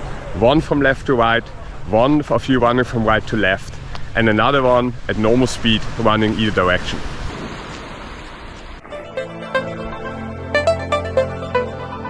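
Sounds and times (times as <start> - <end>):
water at seashore: 0.0 - 9.0
wind: 0.0 - 12.0
electronic music: 8.2 - 12.0.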